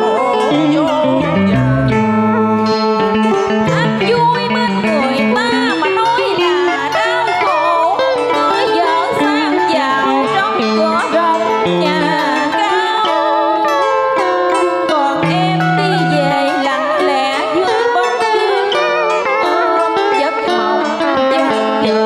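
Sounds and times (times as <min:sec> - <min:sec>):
love song duet over sound system: 0:00.0 - 0:22.0.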